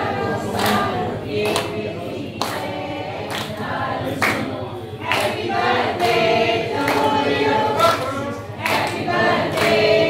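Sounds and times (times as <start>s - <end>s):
group of people singing: 0.0s - 10.0s
hand claps: 0.4s - 10.0s.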